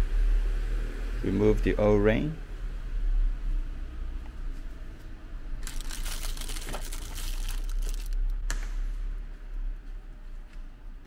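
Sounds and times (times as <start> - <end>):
plastic bag and paper crinkling: 5.6 - 8.4.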